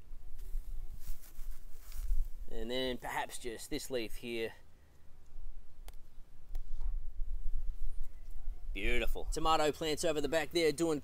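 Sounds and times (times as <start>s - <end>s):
faint rustling: 0.3s - 2.5s.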